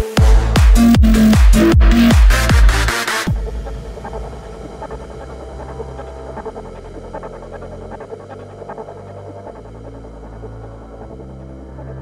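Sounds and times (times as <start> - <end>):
low bass synth notes: 0.0 - 12.0.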